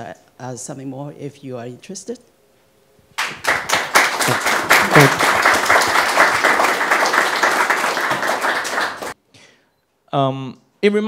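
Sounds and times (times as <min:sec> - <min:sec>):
audience applauding: 0:03.2 - 0:09.2.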